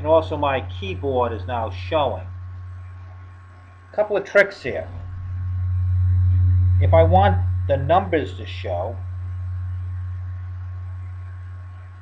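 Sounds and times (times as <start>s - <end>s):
electrical mains hum: 0.0s - 12.0s
faint recording hiss: 0.0s - 12.0s.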